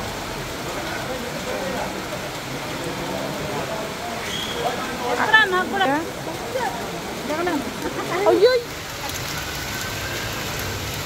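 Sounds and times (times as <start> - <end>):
fast-flowing water: 0.0 - 11.0
rain falling on water: 0.0 - 11.0.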